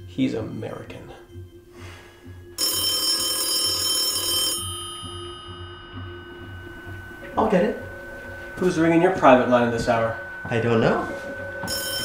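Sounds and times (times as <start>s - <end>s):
background music with pulsing beat: 0.0s - 12.0s
telephone bell ringing: 2.6s - 8.6s, 11.0s - 12.0s.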